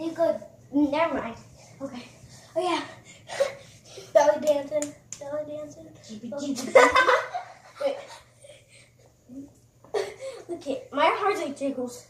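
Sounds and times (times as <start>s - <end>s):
boys laughing: 6.4s - 8.9s, 9.9s - 10.4s.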